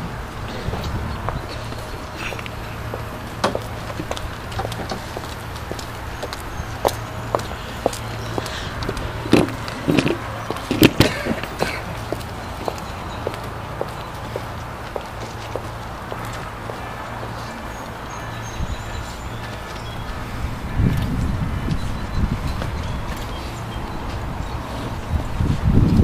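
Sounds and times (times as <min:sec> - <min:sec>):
footsteps on brick paving: 0:00.1 - 0:26.0.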